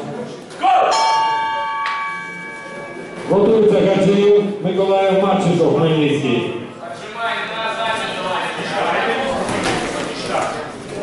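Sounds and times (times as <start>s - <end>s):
bell ringing: 0.9s - 4.4s.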